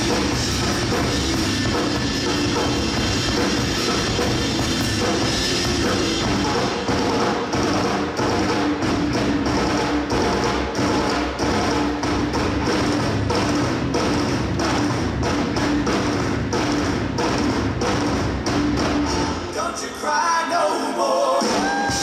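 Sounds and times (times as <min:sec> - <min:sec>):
rock drum kit solo: 0:00.0 - 0:19.6, 0:21.4 - 0:22.0.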